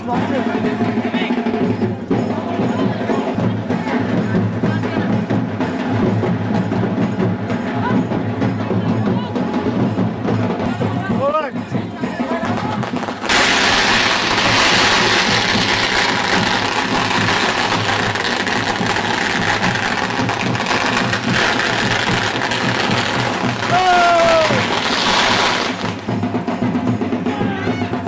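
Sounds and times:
firework fountain hissing: 0:12.3 - 0:27.8.

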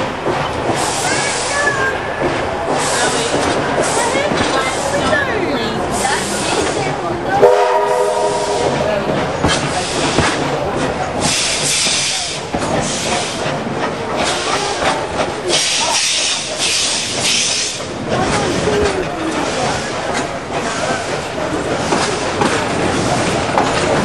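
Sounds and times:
train wheels running on track: 0:00.0 - 0:24.0
steam hissing: 0:00.7 - 0:02.1, 0:05.9 - 0:18.8
train whistle chord: 0:07.4 - 0:08.9.

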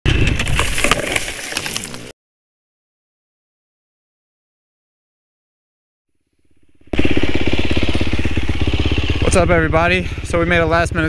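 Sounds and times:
twigs and branches crackling: 0:00.1 - 0:02.1
dirt bike engine rumble: 0:06.4 - 0:11.0.

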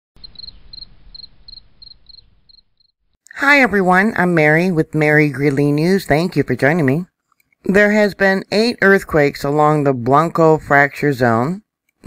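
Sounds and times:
cricket chirping: 0:00.2 - 0:02.9.

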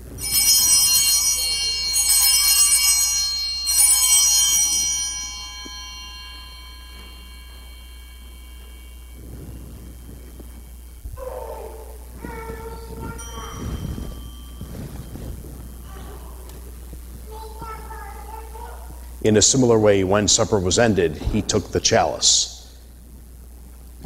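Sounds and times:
altar bells ringing: 0:00.0 - 0:18.2.

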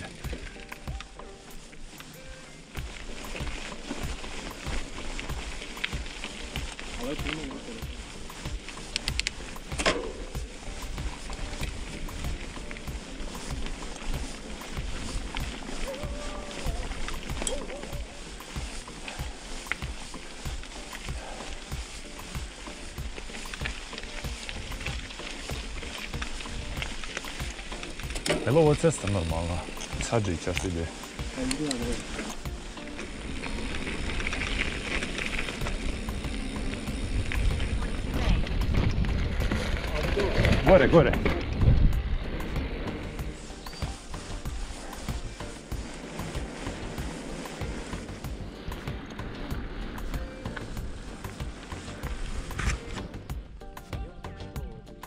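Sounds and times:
tyres crunching on gravel: 0:00.0 - 0:55.0
wind rumbling on microphone: 0:02.6 - 0:53.7.

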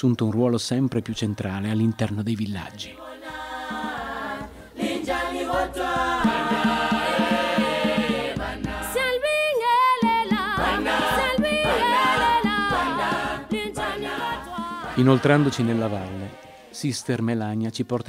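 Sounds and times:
group singing a cappella: 0:01.1 - 0:17.3.

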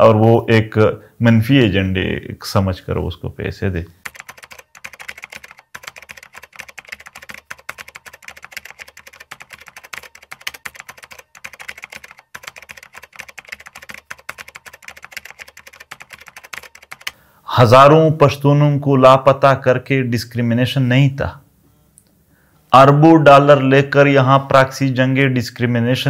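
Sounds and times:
computer keyboard typing: 0:04.0 - 0:17.2.

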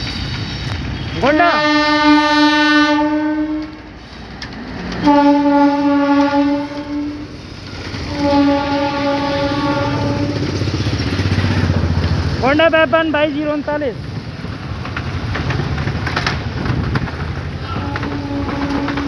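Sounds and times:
train coaches rumbling and clattering: 0:00.0 - 0:19.0
train horn blasts: 0:01.2 - 0:03.9, 0:05.0 - 0:07.4, 0:08.0 - 0:10.6, 0:17.6 - 0:19.0.

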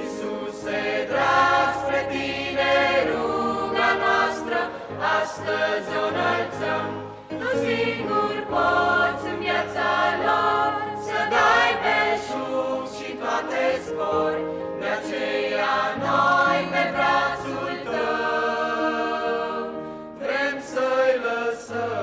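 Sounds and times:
church choir singing: 0:00.0 - 0:22.0.

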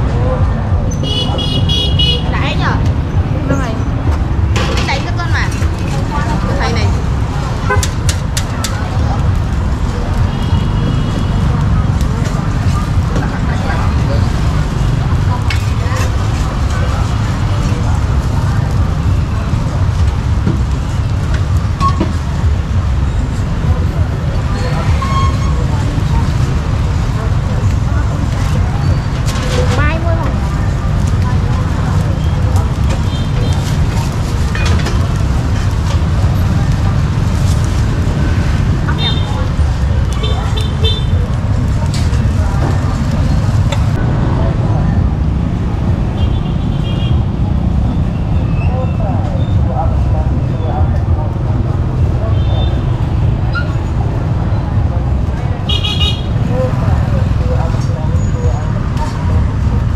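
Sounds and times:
indistinct voices: 0:00.0 - 0:59.9
motorbike engines: 0:00.0 - 0:59.9
street traffic rumble: 0:00.0 - 0:59.9.

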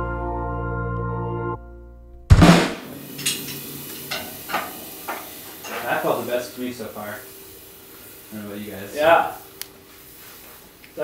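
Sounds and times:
drum kit hit ringing out: 0:02.3 - 0:06.2.

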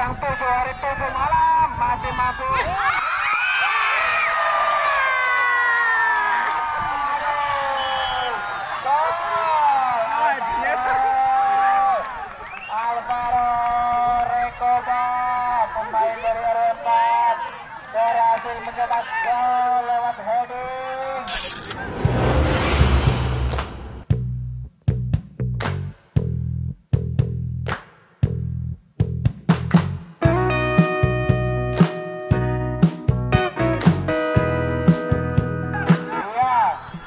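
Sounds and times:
whooshing sound effect: 0:21.3 - 0:24.1.

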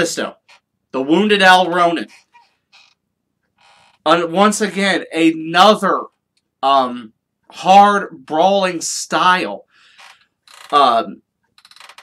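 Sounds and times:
man talking: 0:00.0 - 0:00.4, 0:01.0 - 0:02.1, 0:04.1 - 0:09.6, 0:10.7 - 0:11.2
man breathing in: 0:09.7 - 0:10.3.

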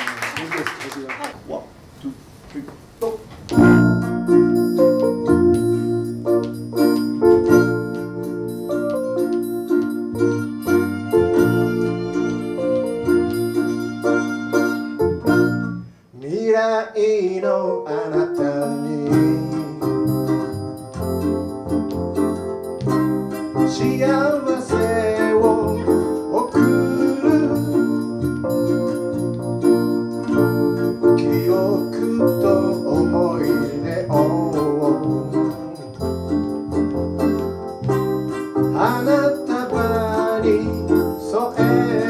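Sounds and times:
bass: 0:01.4 - 0:16.0, 0:18.8 - 0:42.0
plucked ukuleles: 0:03.5 - 0:15.8, 0:18.0 - 0:42.0
keyboard chords: 0:03.5 - 0:15.9, 0:18.2 - 0:42.0.

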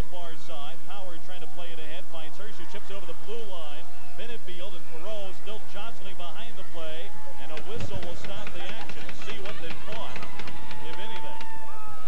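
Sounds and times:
crowd voices and shouts: 0:00.0 - 0:12.0
hockey sticks and puck clacking: 0:07.5 - 0:11.5.

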